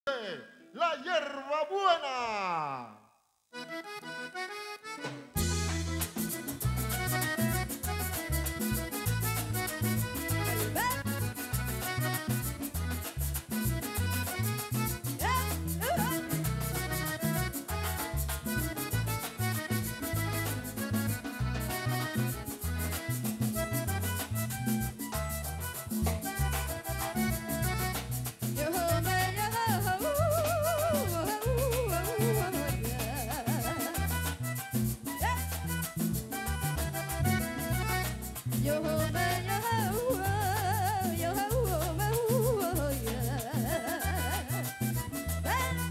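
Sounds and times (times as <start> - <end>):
button accordion melody: 3.5 - 45.9
bass guitar: 3.6 - 45.9
percussion beat: 5.0 - 45.9.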